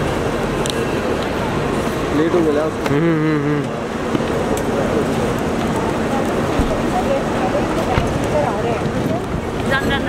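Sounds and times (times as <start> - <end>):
road traffic noise: 0.0 - 10.0
people talking: 1.2 - 10.0.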